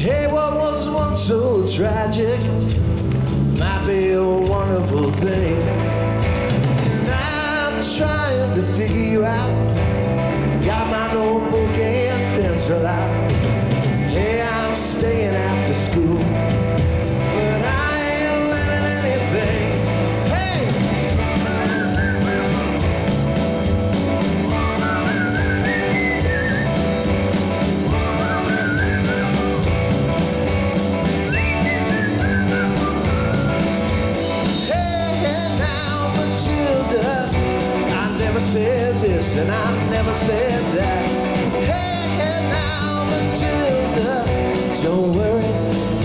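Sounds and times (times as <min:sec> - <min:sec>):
rock band playing: 0:00.0 - 0:46.0
lead guitar bending notes: 0:15.9 - 0:38.0.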